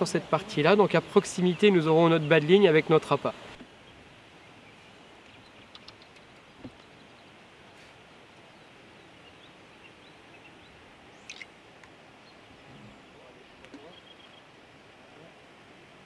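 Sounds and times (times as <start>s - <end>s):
steady low hiss: 0.0s - 16.0s
faint bird chirps: 3.8s - 11.5s, 12.2s - 14.6s
small clicks: 5.6s - 6.9s.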